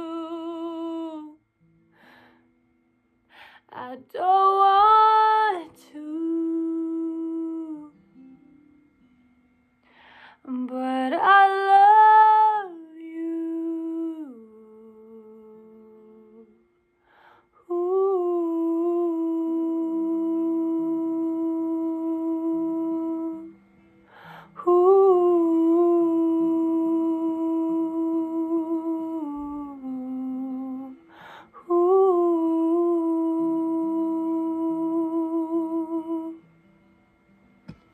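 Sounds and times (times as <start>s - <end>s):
woman humming a long note: 0.0s - 1.4s, 17.5s - 23.6s, 24.4s - 36.5s
lower sung tone: 0.0s - 2.2s, 9.9s - 37.3s.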